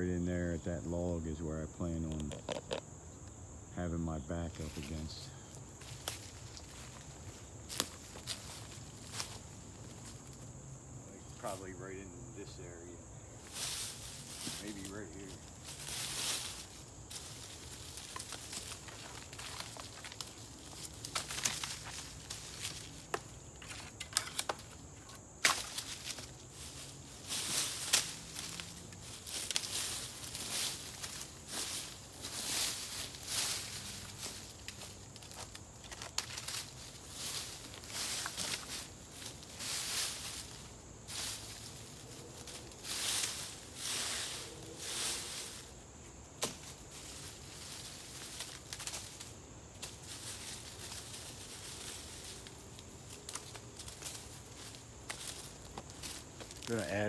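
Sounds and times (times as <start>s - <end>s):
twigs snapping: 5.8s - 10.4s, 15.3s - 41.4s, 46.4s - 56.7s
leaf litter rustling swishes: 13.4s - 23.1s, 25.6s - 57.0s.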